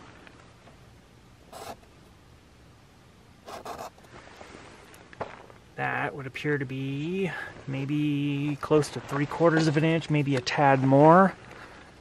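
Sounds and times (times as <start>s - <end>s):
marker scratching on surface: 1.5s - 1.8s, 3.5s - 4.1s.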